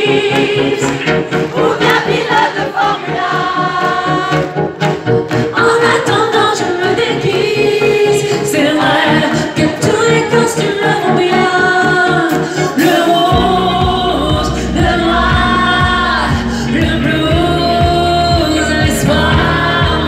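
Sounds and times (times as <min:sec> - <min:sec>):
keyboards and steady beat: 0:00.0 - 0:20.0
deep bass: 0:13.3 - 0:20.0.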